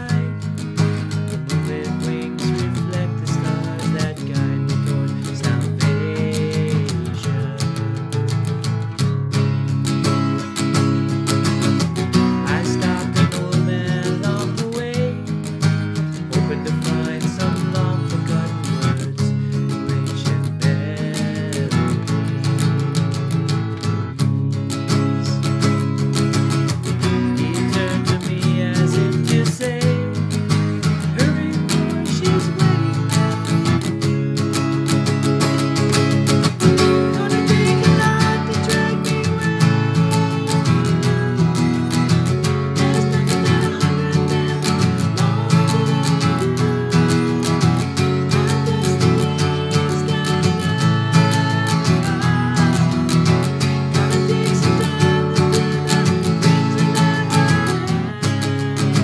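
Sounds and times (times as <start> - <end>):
acoustic guitar strumming: 0.0 - 59.0.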